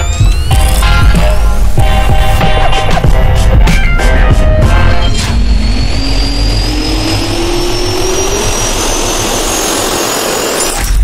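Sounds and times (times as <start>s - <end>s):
jet turbine spooling up: 0.0s - 11.0s.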